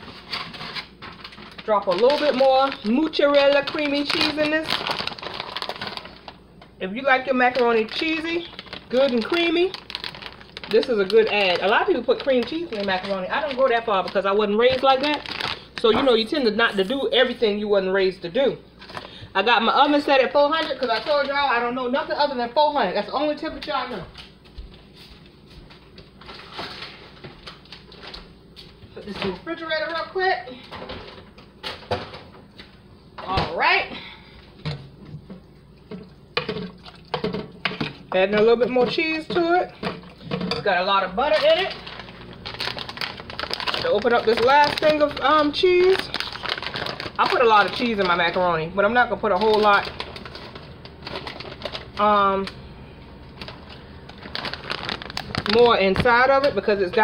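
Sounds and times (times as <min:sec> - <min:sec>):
plastic packaging rustling: 0:00.0 - 0:17.4, 0:20.2 - 0:21.7, 0:25.6 - 0:30.0, 0:36.4 - 0:52.6, 0:53.2 - 0:57.0.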